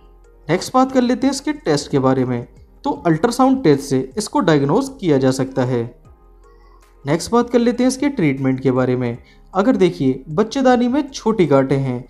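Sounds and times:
faint background music: 0.0 - 12.0
man speaking: 0.5 - 6.0, 7.0 - 12.0.

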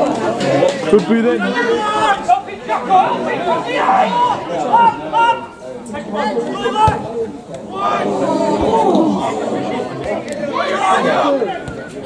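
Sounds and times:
men calling out and chattering: 0.0 - 12.0.

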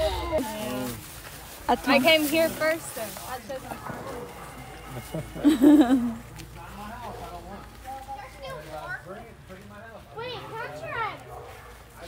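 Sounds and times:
background chatter of voices: 0.0 - 12.0.

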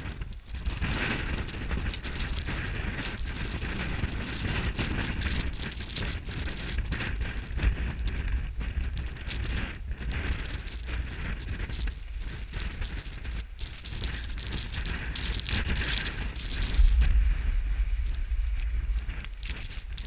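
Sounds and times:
skis sliding on snow: 0.0 - 20.0
wind buffeting microphone: 0.0 - 20.0.

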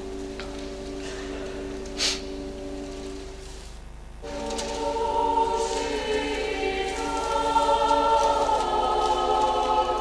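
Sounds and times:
choir singing slow melody: 4.2 - 10.0.

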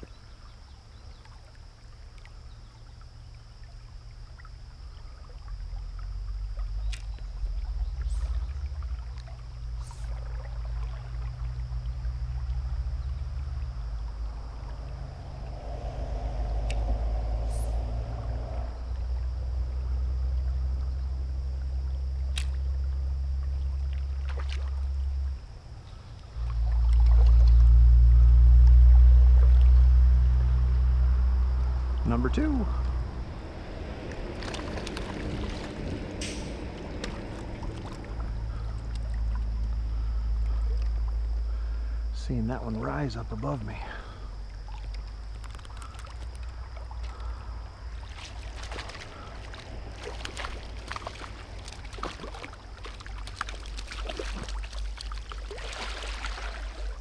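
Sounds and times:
faint river flow: 0.0 - 57.0
wind buffeting microphone: 31.8 - 38.8.

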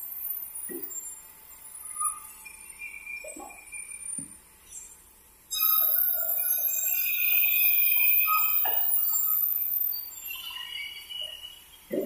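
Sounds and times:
high ringing tones: 5.5 - 11.2.

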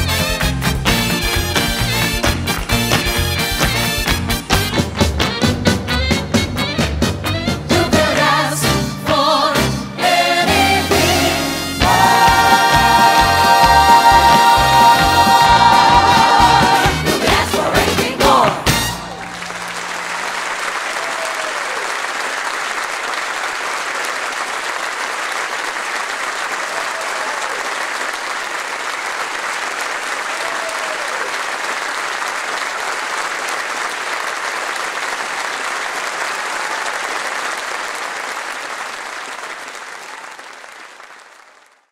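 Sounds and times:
audience applauding: 0.0 - 5.8, 10.0 - 41.9.

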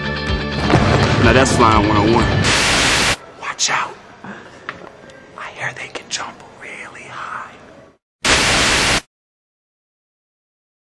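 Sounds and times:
burst of white noise: 2.3 - 3.2, 8.2 - 9.1.

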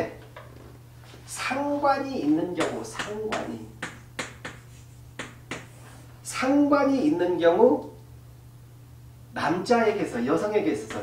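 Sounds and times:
chalk tapping on blackboard: 2.6 - 6.0.

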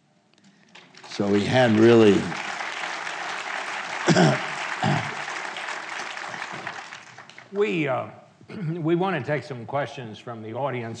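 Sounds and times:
audience applauding: 0.6 - 7.7.

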